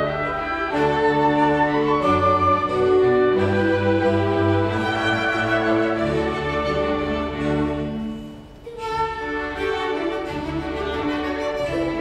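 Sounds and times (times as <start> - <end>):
orchestra playing classical music: 0.0 - 12.0
violins bowing sustained notes: 0.0 - 12.0.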